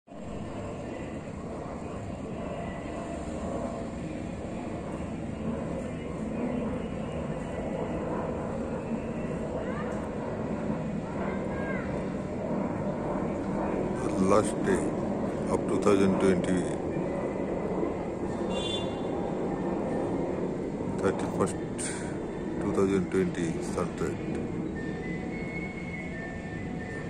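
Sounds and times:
jet airliner engine noise: 0.1 - 27.0.

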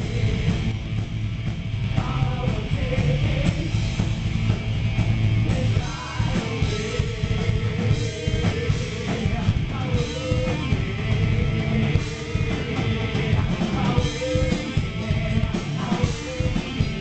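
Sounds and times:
man singing: 0.0 - 0.7, 2.0 - 3.9, 5.4 - 17.0
distorted electric guitars: 0.0 - 17.0
drums: 0.0 - 17.0.

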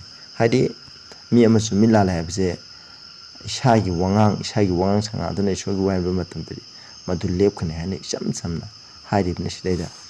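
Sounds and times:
crickets chirping: 0.0 - 10.0
man speaking: 0.4 - 2.6, 3.4 - 10.0.

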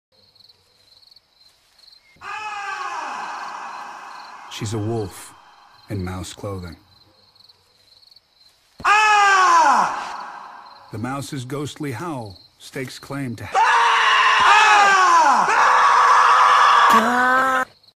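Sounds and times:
high-pitched howling voices: 2.2 - 6.0.

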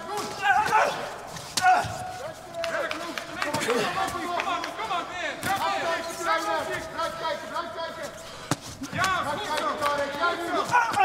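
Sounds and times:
voices talking and calling out: 0.0 - 11.0.

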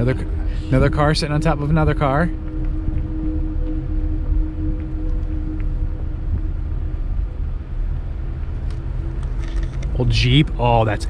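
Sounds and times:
engine and tyre rumble: 0.0 - 11.0
faint steady hum: 0.0 - 11.0.

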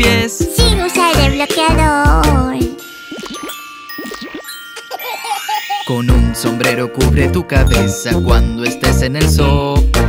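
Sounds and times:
bright chime dings: 2.7 - 6.4.

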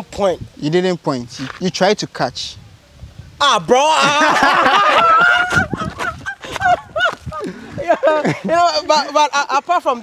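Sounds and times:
men laughing heartily: 3.8 - 9.3.

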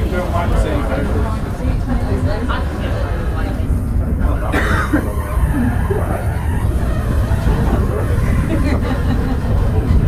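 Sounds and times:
steam locomotive rumble: 0.0 - 10.0.

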